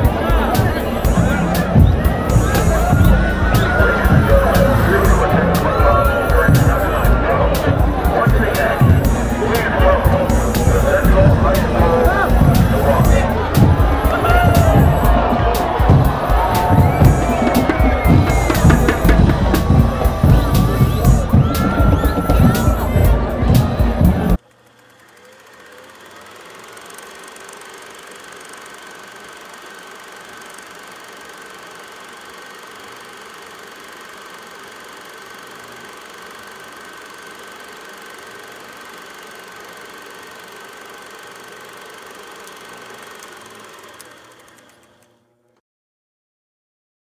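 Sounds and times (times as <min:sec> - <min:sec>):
high steady tone: 0:00.0 - 0:44.5
loud crowd noise: 0:00.0 - 0:44.6
mechanical running sound: 0:00.0 - 0:45.6.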